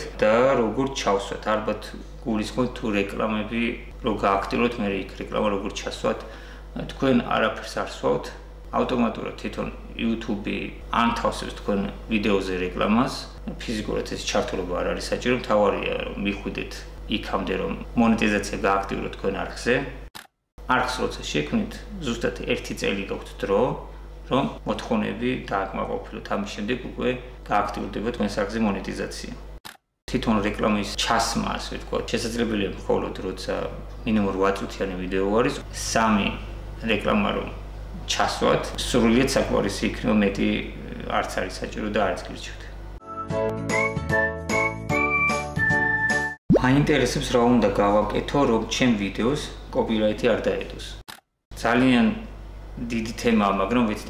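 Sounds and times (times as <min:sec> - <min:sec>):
man talking: 0:00.0 - 0:20.0, 0:20.6 - 0:29.4, 0:30.1 - 0:42.8, 0:46.5 - 0:54.0.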